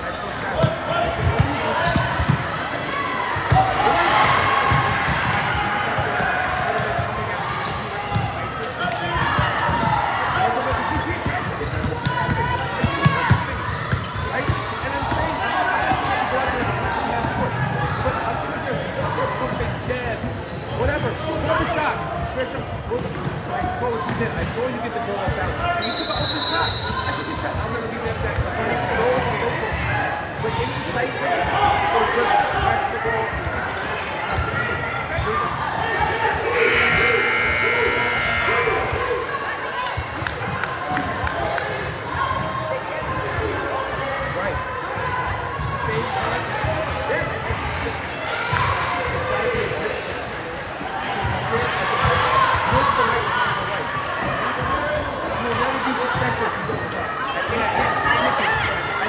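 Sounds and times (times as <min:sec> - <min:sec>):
spectators' voices: 0:23.2 - 0:59.0
scoreboard buzzer: 0:36.6 - 0:39.1.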